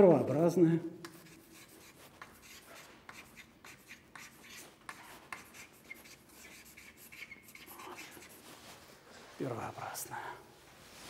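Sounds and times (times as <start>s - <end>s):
chalk writing on blackboard: 1.0s - 8.8s.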